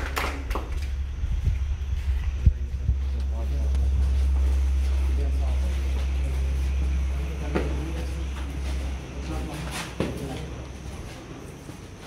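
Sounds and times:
low steady rumble: 0:00.0 - 0:11.6
faint voices: 0:01.9 - 0:12.0.

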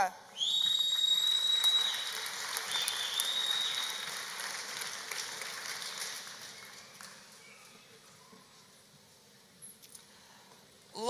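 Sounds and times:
high whistles from crowd: 0:00.3 - 0:04.1
audience applauding: 0:00.7 - 0:07.4.

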